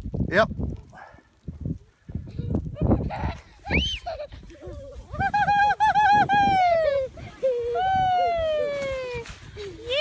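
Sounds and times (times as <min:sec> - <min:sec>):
sled sliding on snow: 0:02.3 - 0:10.0.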